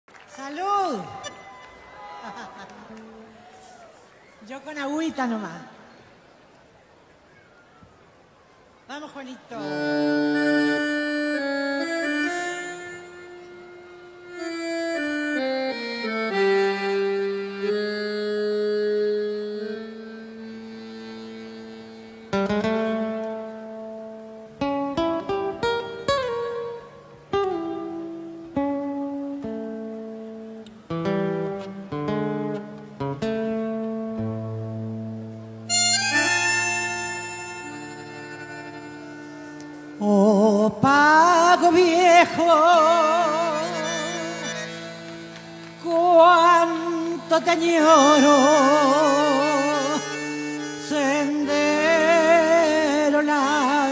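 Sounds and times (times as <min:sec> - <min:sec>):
bandoneon playing: 0:09.6 - 0:40.4, 0:41.6 - 0:53.9
plucked guitar notes: 0:09.6 - 0:40.9, 0:41.6 - 0:53.9.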